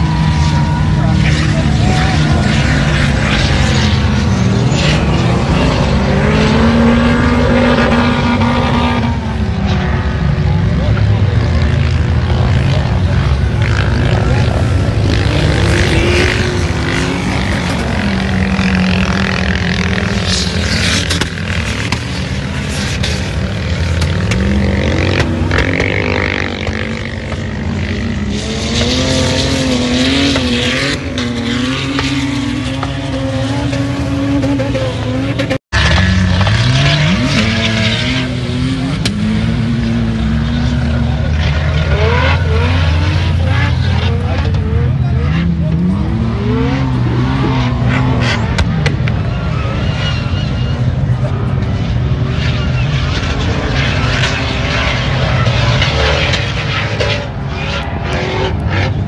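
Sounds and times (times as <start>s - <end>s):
off-road engines revving: 0.0s - 59.0s.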